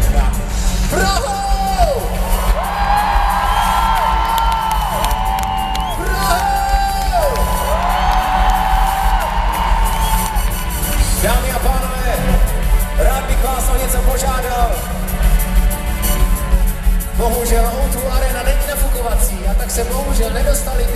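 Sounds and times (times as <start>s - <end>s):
live band playing loudly: 0.0s - 20.9s.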